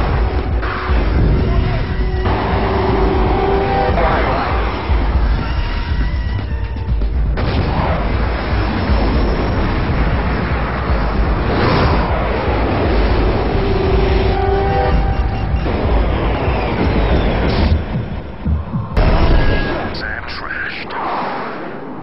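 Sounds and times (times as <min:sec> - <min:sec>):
dramatic action music: 0:00.0 - 0:20.6
jet engine rumble: 0:00.0 - 0:22.0.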